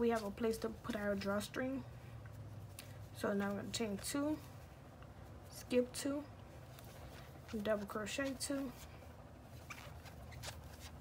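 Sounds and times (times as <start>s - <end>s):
crochet ticks and rustles: 0.0s - 1.4s
low steady hum: 0.0s - 11.0s.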